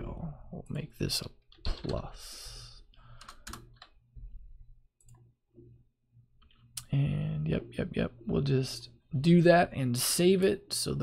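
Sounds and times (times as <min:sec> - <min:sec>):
computer keyboard typing: 0:03.2 - 0:03.9.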